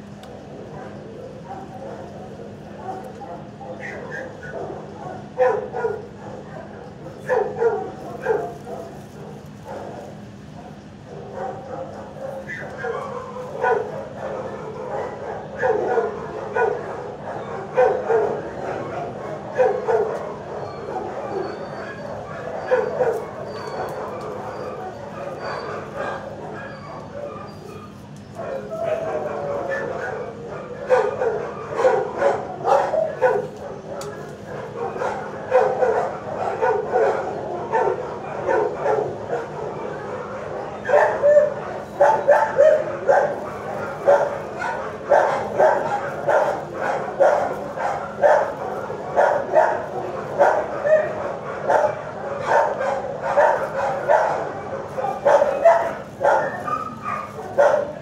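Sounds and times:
dogs barking and yipping: 0:00.0 - 0:58.0.

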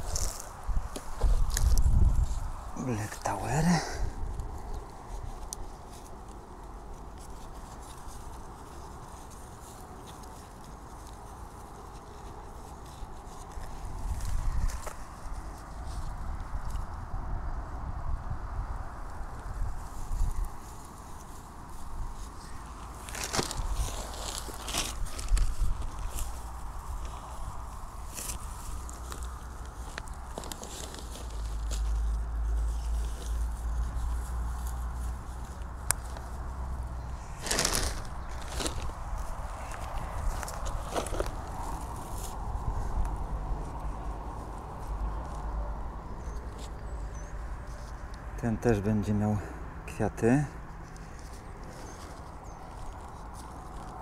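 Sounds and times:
hands rustling soil and dry grass: 0:00.0 - 0:54.0.

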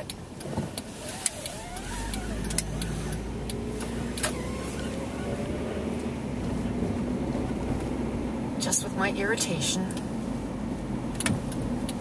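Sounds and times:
sharp clicks: 0:00.0 - 0:04.4
car engine and road noise: 0:00.0 - 0:12.0.

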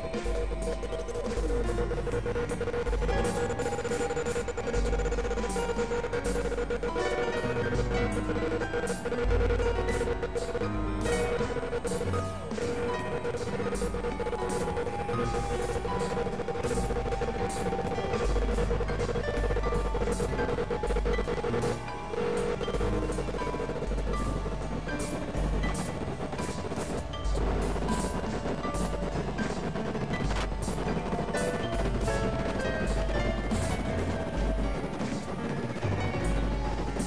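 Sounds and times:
held synth drone: 0:00.0 - 0:37.0.

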